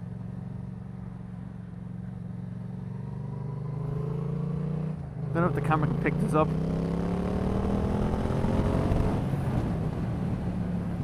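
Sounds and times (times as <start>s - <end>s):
motorcycle engine accelerating: 1.7s - 11.0s.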